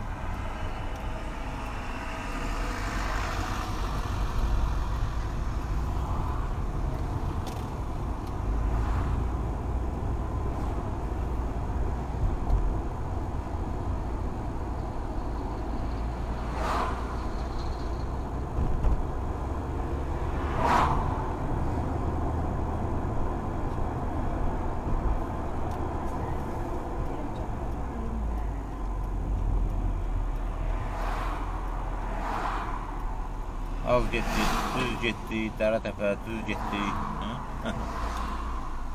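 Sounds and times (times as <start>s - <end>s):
engine and tyre rumble: 0.0s - 38.9s.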